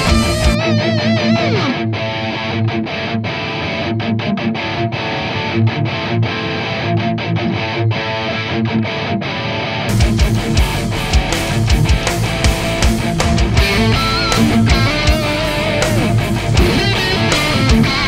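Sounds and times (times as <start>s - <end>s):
band with drums: 0.0s - 0.6s, 9.9s - 18.0s
distorted electric guitar riff: 0.0s - 18.0s.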